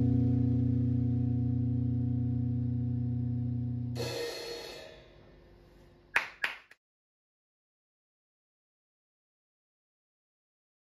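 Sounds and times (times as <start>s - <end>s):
distorted guitar drone: 0.0s - 5.1s
crash cymbal hit: 0.0s - 5.2s.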